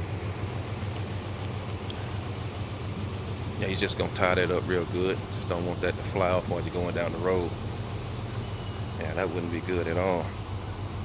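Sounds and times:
vehicle engine idling: 0.0 - 11.0
faint ticks: 0.8 - 2.1.

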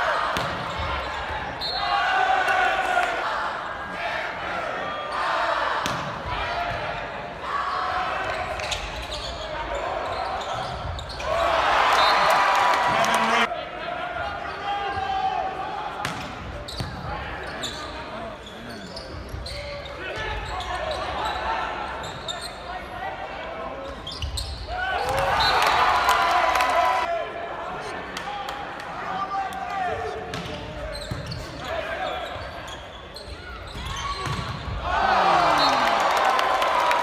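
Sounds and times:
crowd voices: 0.0 - 37.0
players calling out: 8.2 - 15.1.

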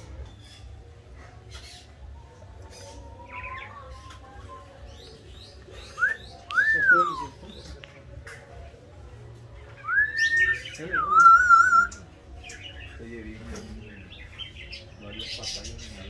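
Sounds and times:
songbirds chirping: 0.0 - 16.0.

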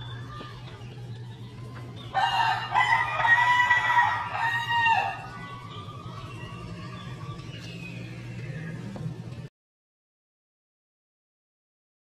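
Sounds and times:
rooster crowing: 2.1 - 6.4.

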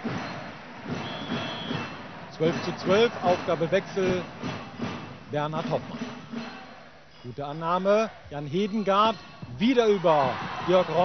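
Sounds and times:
high whistle blast: 1.0 - 2.0.

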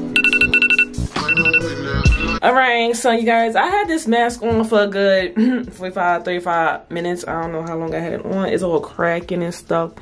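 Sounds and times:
timer alarm beeping: 0.1 - 2.4.

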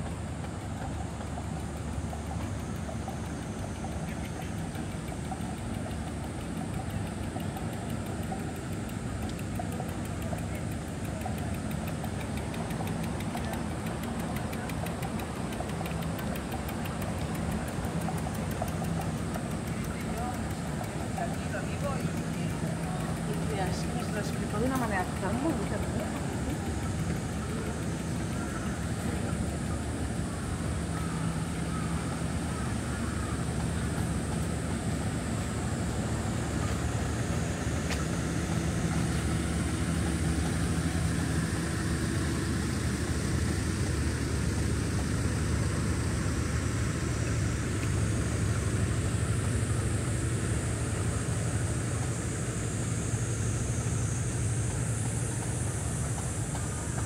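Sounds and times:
high steady hiss: 0.0 - 57.0
vehicle engine idling: 0.0 - 57.0.

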